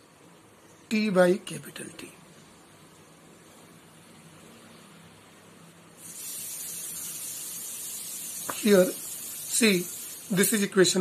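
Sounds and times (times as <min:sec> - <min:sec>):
steady high-pitched hiss: 0:00.0 - 0:11.0.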